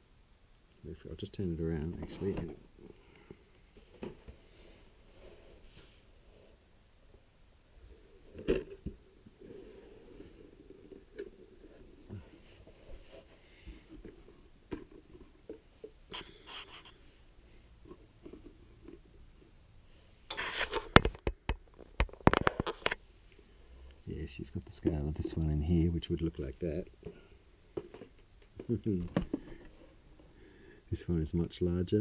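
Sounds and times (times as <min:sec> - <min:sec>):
rustling: 0:01.3 - 0:21.0.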